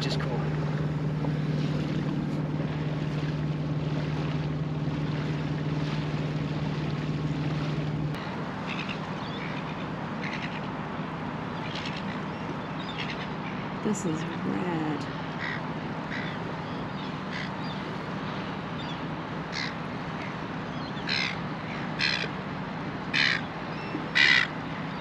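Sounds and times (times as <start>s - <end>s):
boat engine humming: 0.0s - 25.0s.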